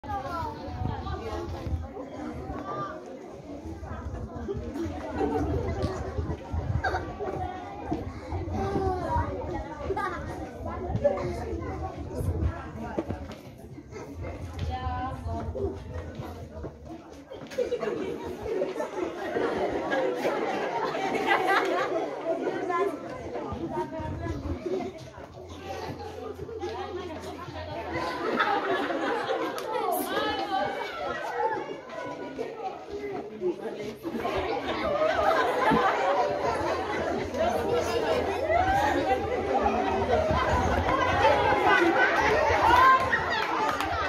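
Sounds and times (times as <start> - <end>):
children chattering and calling: 0.0 - 44.0.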